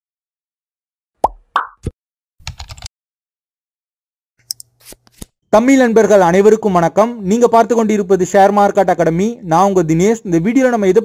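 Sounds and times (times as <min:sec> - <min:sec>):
cartoon bloop pops: 0:01.2 - 0:02.0.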